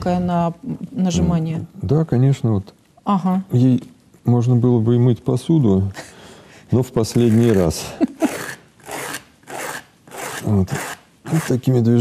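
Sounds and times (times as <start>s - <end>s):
sanding sponge rasping: 7.1s - 11.8s.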